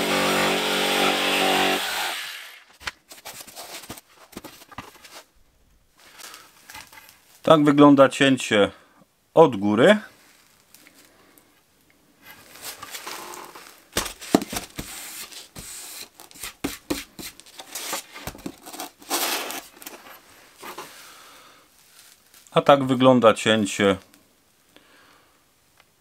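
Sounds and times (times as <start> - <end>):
boards rustling and scraping: 2.7 - 5.3, 6.0 - 7.4, 12.2 - 21.2
boards knocking on workbench: 14.0 - 14.9.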